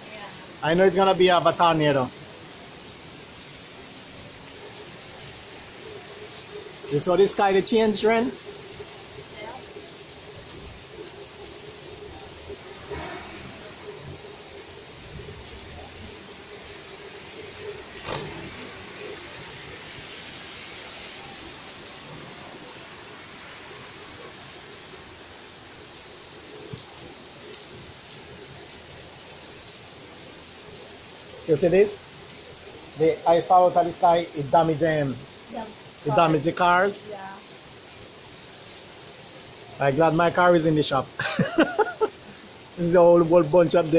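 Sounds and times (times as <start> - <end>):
heavy rain pouring: 0.0 - 43.9.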